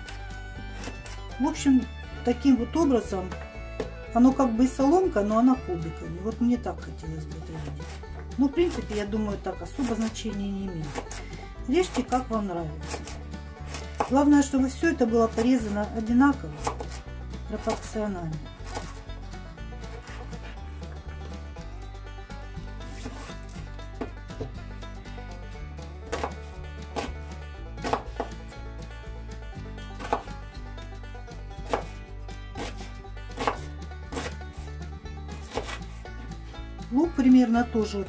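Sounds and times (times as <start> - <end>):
background music: 0.0 - 38.0
knife chopping on cutting board: 10.8 - 11.2, 12.8 - 14.2, 16.6 - 17.0, 22.9 - 23.3, 26.1 - 27.1, 27.8 - 28.4, 30.0 - 30.3, 31.6 - 32.0, 32.6 - 34.4, 35.3 - 35.9.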